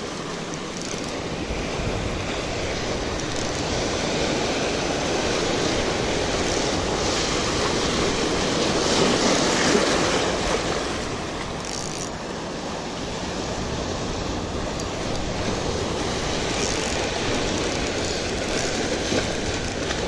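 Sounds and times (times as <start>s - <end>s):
small waves breaking on rocks: 0.0s - 20.0s.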